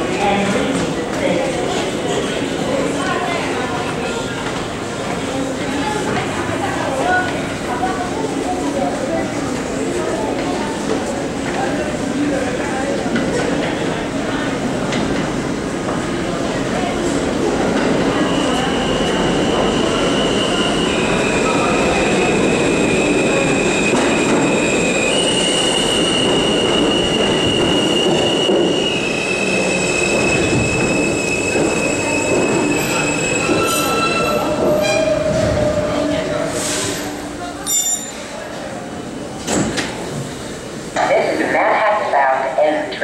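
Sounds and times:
subway train wheels rumbling: 0:00.0 - 0:43.0
high-pitched wheel squeal: 0:24.6 - 0:35.9.

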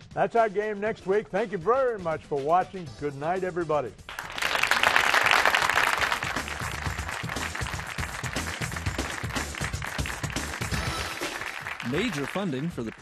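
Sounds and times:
theme music with steady bass: 0:00.0 - 0:13.0
hand clapping: 0:04.1 - 0:13.0.

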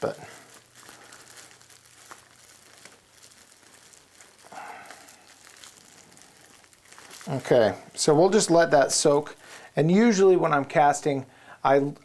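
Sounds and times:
plastic bag crinkling: 0:00.0 - 0:11.1.

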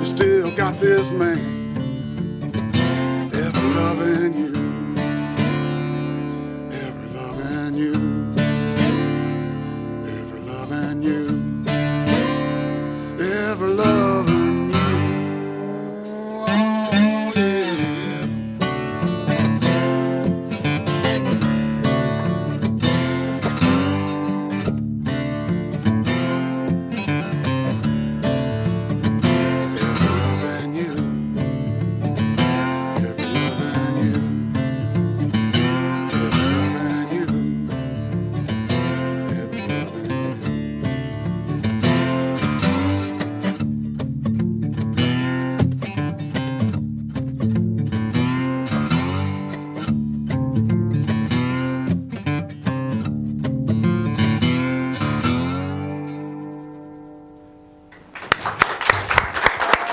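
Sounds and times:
acoustic guitars playing blues: 0:00.0 - 0:58.6.

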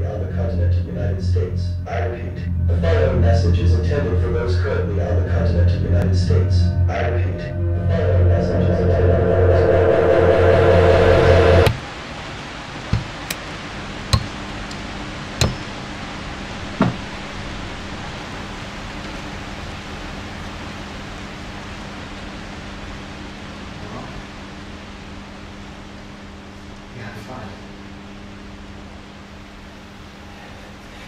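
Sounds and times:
loud low droning tone: 0:00.0 - 0:26.7
faint hum: 0:00.0 - 0:31.0.

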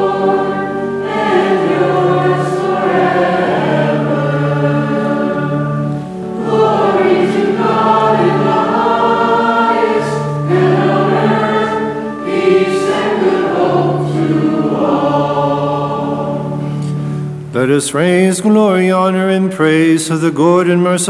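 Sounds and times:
group singing a hymn: 0:00.0 - 0:17.7.

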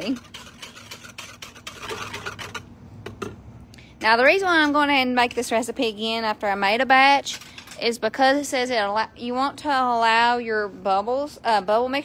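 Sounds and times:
liquid swishing: 0:00.0 - 0:02.7.

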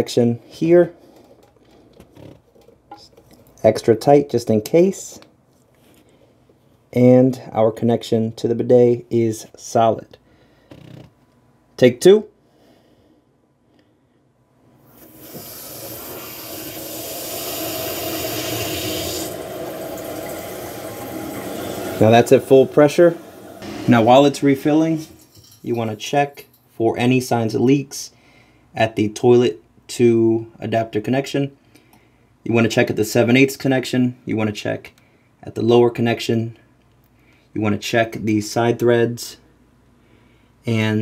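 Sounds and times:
faint handling sounds: 0:05.2 - 0:06.9
water rushing through toilet valve: 0:14.9 - 0:24.4.

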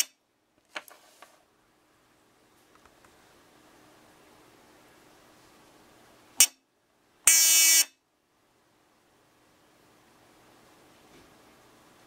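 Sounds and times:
piezo buzzer buzzing: 0:07.3 - 0:08.0.

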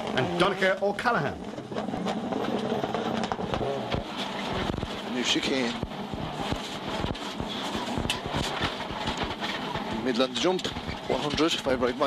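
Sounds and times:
sharp exhaust cracks: 0:00.0 - 0:12.0.

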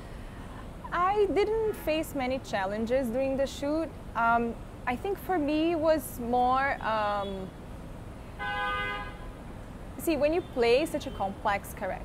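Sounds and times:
vehicle horn toot: 0:08.4 - 0:09.3.

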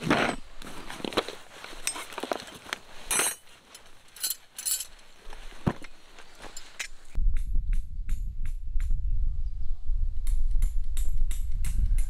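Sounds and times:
fabric bag rustling: 0:00.0 - 0:06.8
light metal clinks: 0:03.0 - 0:05.1.

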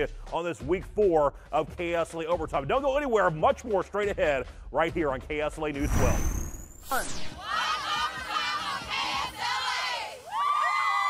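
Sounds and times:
cheerleaders shouting a cheer: 0:07.4 - 0:11.0.

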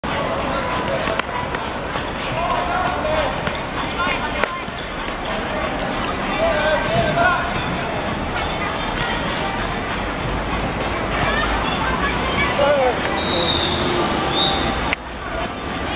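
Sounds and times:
players shouting: 0:12.9 - 0:15.0.

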